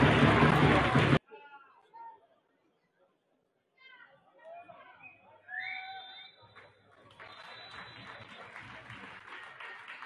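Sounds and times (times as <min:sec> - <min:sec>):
crowd noise: 0:00.0 - 0:10.0
faint clapping: 0:06.5 - 0:10.0.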